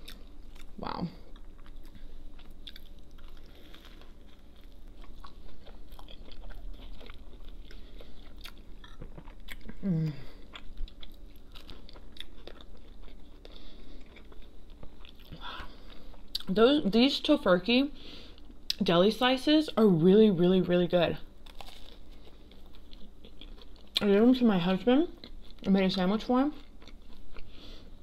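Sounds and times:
chewing crunchy sandwich: 0.0s - 16.5s, 21.3s - 24.1s, 25.1s - 25.7s, 26.5s - 28.0s.

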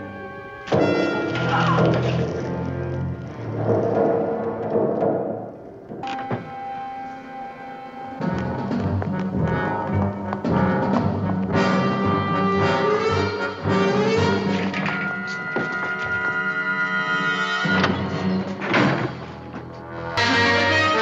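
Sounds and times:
orchestral music with brass and timpani: 0.0s - 4.6s, 6.6s - 21.0s.

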